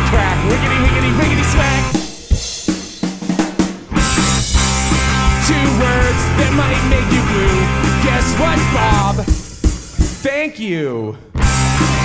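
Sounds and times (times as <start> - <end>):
rock band playing: 0.0 - 10.3, 11.4 - 12.0.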